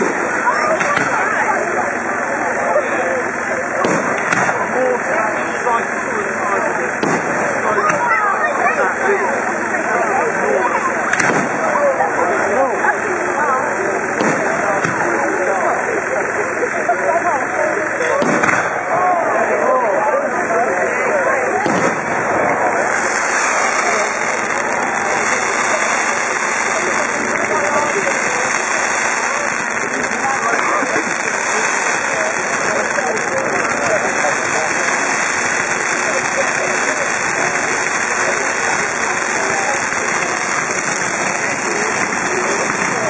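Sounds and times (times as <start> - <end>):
crowd voices talking and calling: 0.0 - 43.0
fireworks fountain hissing: 0.0 - 43.0.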